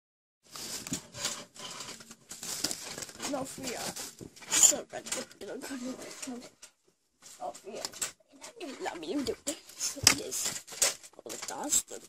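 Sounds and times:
rustling handling noise on microphone: 0.4 - 12.0.

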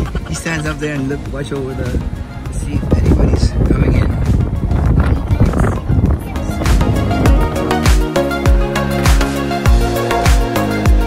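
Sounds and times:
background music with heavy bass: 0.0 - 11.0.

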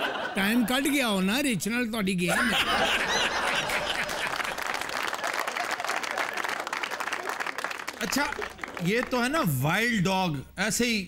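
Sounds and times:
audience clapping: 3.1 - 9.8.

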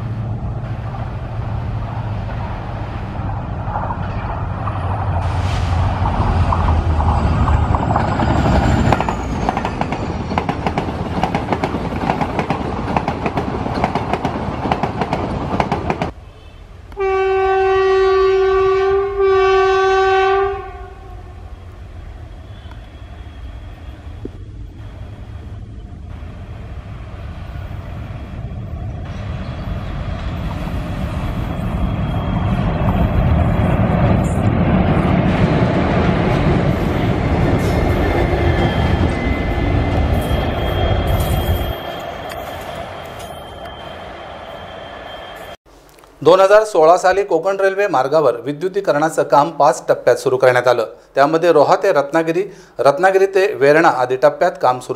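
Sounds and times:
approaching train rumble: 0.0 - 45.6
train coaches rolling past: 0.0 - 54.9
locomotive horn blasts: 16.9 - 21.3.

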